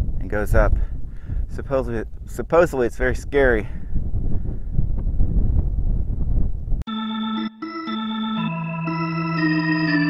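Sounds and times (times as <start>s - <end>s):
wind rumbling on microphone: 0.0s - 6.8s
organ-like keyboard chords: 6.9s - 10.0s.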